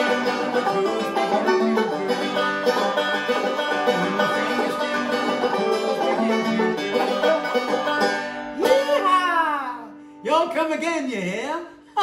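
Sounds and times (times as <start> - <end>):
banjo chord ringing: 0.0 - 9.0
man's wordless sliding voice: 3.9 - 4.6.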